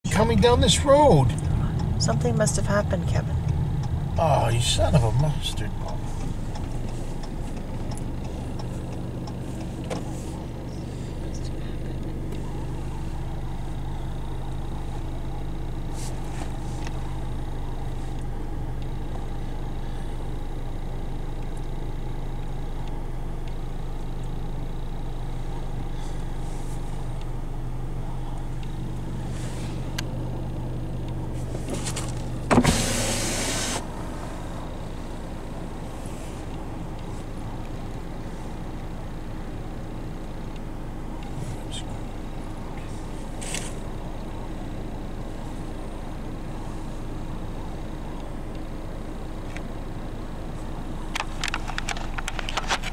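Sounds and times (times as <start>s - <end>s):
car cabin hum: 0.0s - 52.9s
power window motor: 31.4s - 34.3s.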